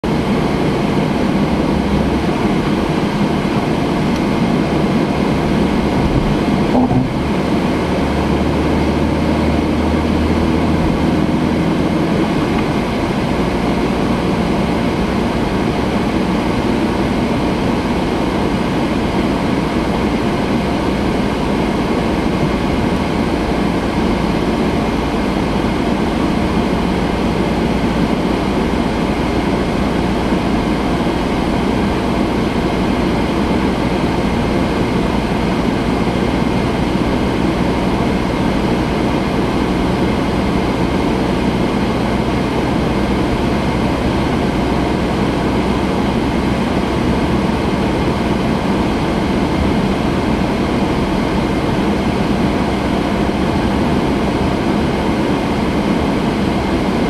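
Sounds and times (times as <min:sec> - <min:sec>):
car engine hum: 0:00.0 - 0:57.0
road and tyre rumble: 0:00.0 - 0:57.0.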